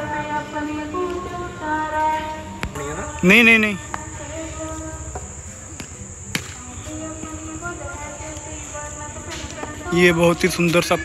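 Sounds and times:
crickets chirring: 0.0 - 11.0
faint background murmur: 0.0 - 11.0.

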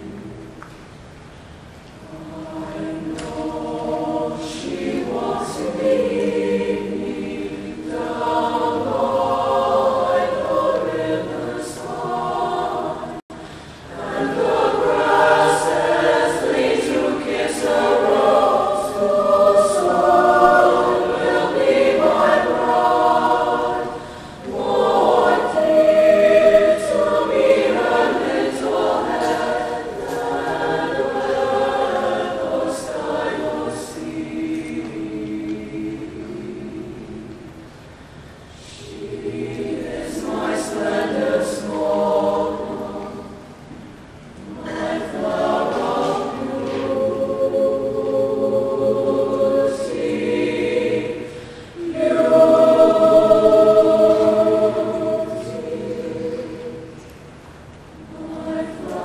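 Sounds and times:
mixed choir singing: 0.0 - 0.6, 2.0 - 59.0.

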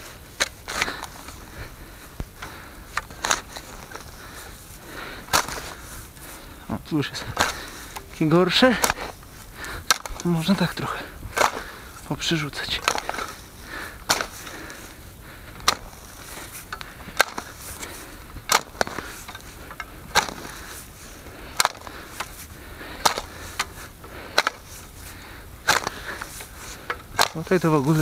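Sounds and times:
spade chopping into soil: 5.3 - 5.8, 7.3 - 9.1, 9.8 - 10.6, 14.0 - 14.5, 15.6 - 16.0, 18.5 - 19.1, 20.1 - 20.8, 21.6 - 22.4, 23.0 - 24.7, 25.6 - 28.0.

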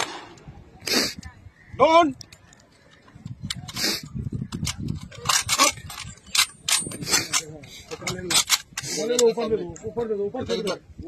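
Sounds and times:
rifle volley: 0.0 - 0.5
crowd voices: 0.0 - 11.0.

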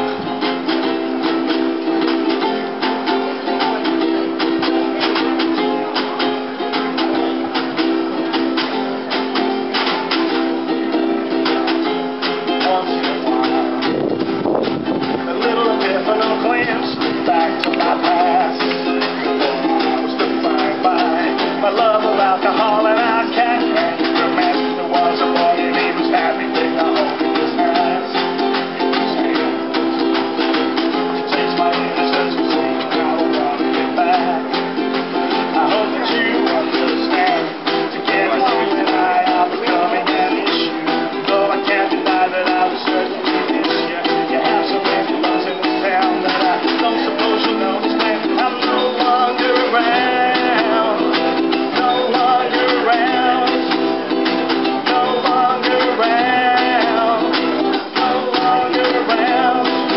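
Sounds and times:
acoustic guitars strumming: 0.0 - 59.9.

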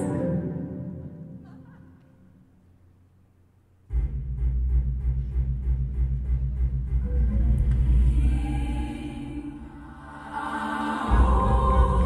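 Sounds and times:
choir voices: 0.0 - 2.1, 7.5 - 12.0
deep fast-pulsing bass: 3.9 - 8.7.

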